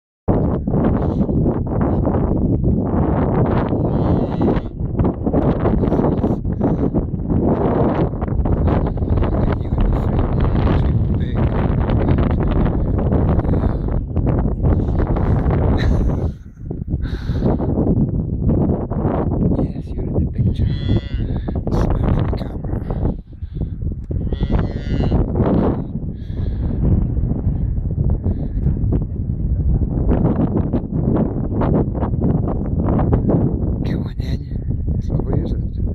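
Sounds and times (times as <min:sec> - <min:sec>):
wind buffeting microphone: 0:00.3 - 0:35.9.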